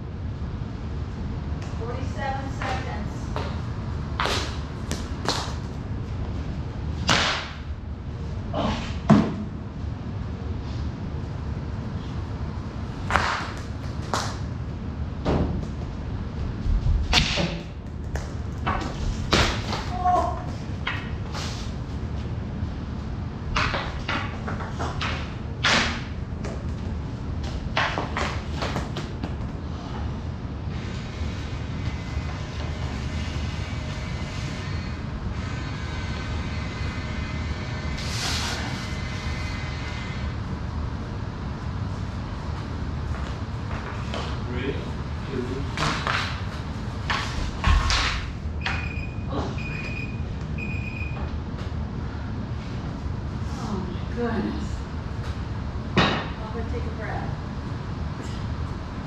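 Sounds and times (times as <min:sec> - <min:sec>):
hockey sticks striking concrete floor: 0:07.0 - 0:07.6, 0:13.1 - 0:14.4, 0:17.1 - 0:21.2, 0:23.5 - 0:26.8, 0:27.4 - 0:29.5, 0:45.7 - 0:48.8.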